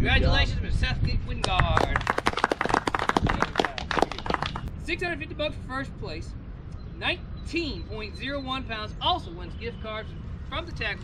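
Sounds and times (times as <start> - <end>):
people clapping: 1.4 - 4.7.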